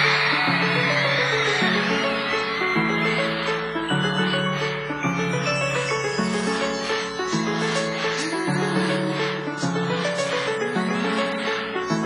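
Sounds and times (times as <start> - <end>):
live pop concert music: 0.0 - 5.8
crowd screaming: 0.0 - 6.6.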